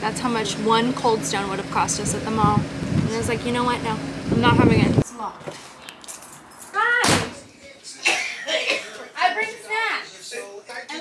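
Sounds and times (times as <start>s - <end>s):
screen door banging shut: 7.0s - 7.5s.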